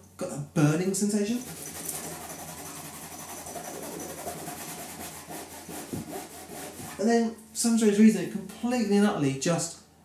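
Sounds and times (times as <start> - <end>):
fingertips rubbing fabric upholstery: 1.4 - 7.0.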